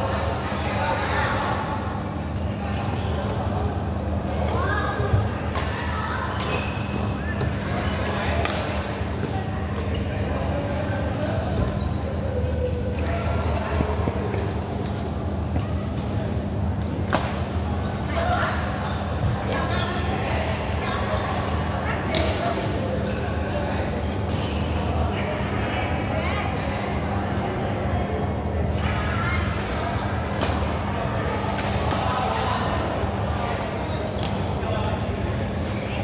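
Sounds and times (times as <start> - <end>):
voices chattering in a hall: 0.0 - 36.0.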